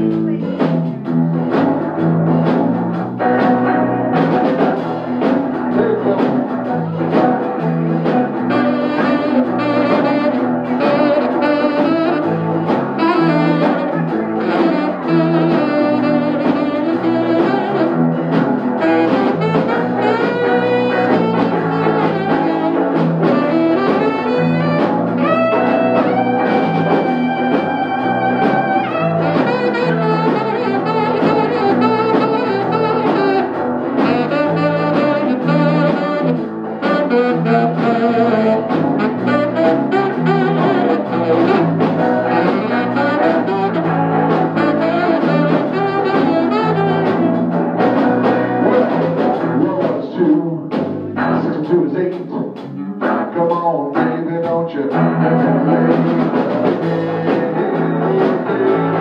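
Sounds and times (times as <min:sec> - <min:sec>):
bass guitar: 0:00.0 - 0:59.0
drum kit: 0:00.0 - 0:59.0
electric guitar lead: 0:00.0 - 0:59.0.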